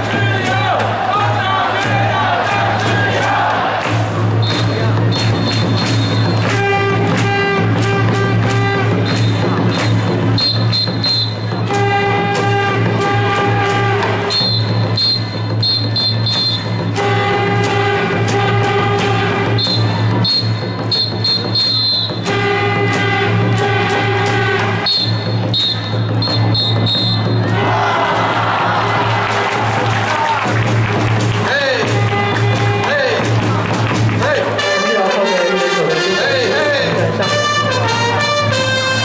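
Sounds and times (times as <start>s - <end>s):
ballpark cheering music: 0.0s - 39.0s
crowd voices: 0.0s - 39.0s.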